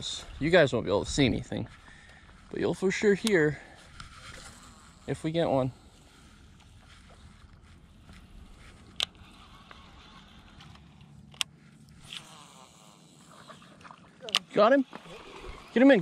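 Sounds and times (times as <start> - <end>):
fishing gear handling rustle: 1.5 - 12.4.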